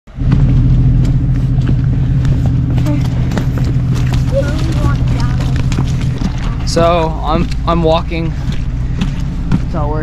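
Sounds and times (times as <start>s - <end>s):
car engine at low revs: 0.1s - 10.0s.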